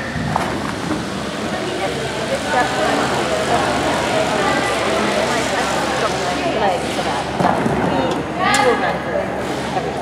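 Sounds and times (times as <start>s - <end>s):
indistinct voices: 1.1s - 10.0s.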